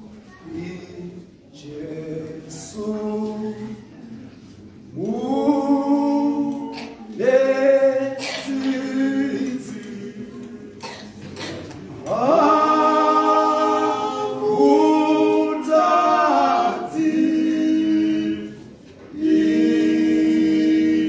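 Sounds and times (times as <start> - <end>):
men's choir singing a cappella: 0.0 - 21.0.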